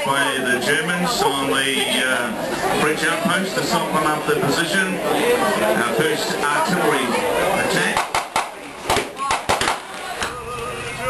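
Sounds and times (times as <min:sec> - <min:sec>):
blank gunfire bangs: 0:07.9 - 0:09.9.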